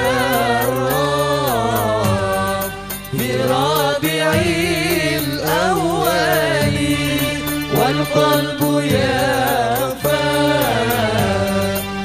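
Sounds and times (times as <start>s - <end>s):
instrumental backing: 0.0s - 12.0s
male group singing in harmony: 0.0s - 12.0s.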